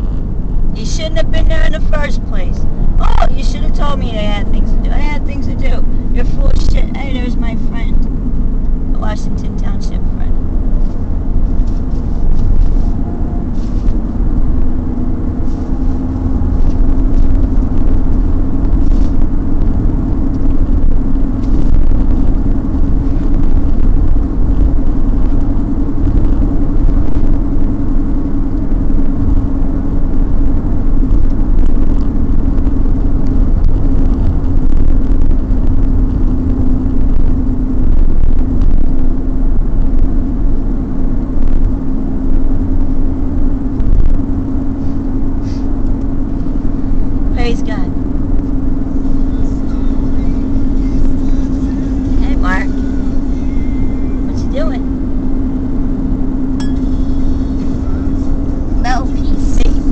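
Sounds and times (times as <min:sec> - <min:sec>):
car cabin road and engine rumble: 0:00.0 - 0:59.9.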